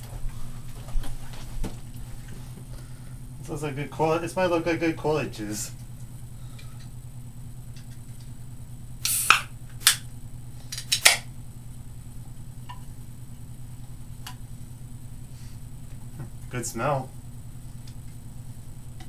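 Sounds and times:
steady low hum: 0:00.0 - 0:19.0
drink can opening hiss: 0:09.0 - 0:10.0.

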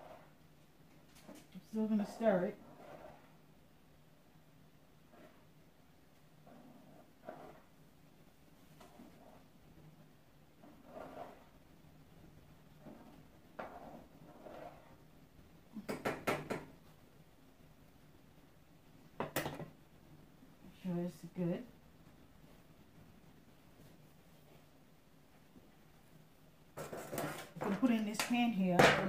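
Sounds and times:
spoon scraping pan: 0:06.5 - 0:07.8, 0:10.6 - 0:11.7, 0:12.8 - 0:15.1, 0:26.8 - 0:28.3
spoon stirring boiling pasta: 0:08.8 - 0:15.2, 0:26.8 - 0:28.4.

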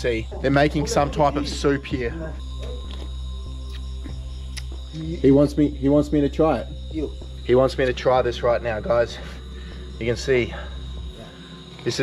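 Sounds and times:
drone-like background music: 0:00.0 - 0:12.0.

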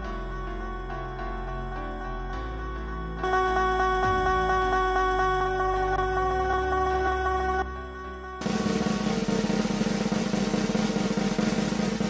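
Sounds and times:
snare drum roll: 0:08.4 - 0:12.0.

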